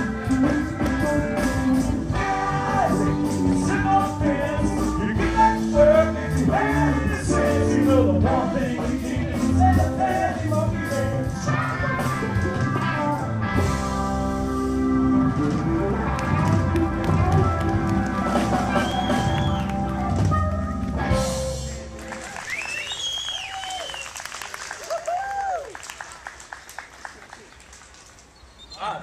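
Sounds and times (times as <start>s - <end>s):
live rock band playing: 0.0s - 22.6s
audience applause: 15.9s - 21.0s, 21.6s - 28.2s
audience cheering: 16.0s - 20.6s, 21.7s - 27.6s.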